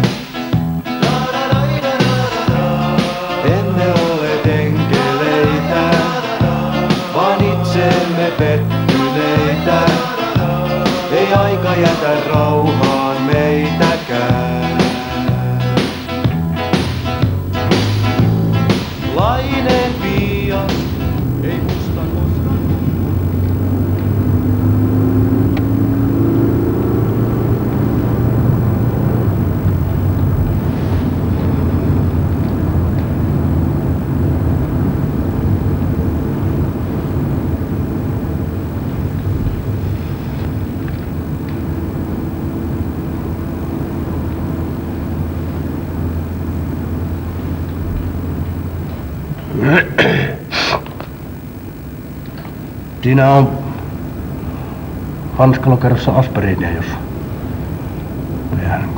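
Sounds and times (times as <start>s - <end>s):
music: 0.0s - 23.1s
vehicle interior rumble: 2.5s - 50.2s.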